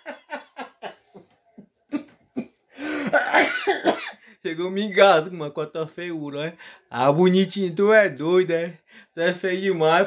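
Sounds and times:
man coughing and laughing: 1.9 - 4.3.

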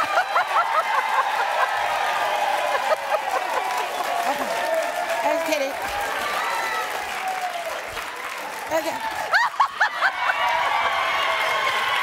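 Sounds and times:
audience applause: 0.0 - 12.0
shouted cheers and whoops: 0.0 - 12.0.

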